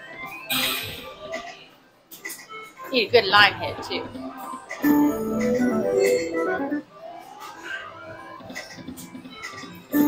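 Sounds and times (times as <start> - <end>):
slot machine electronic jingle: 4.8 - 6.8.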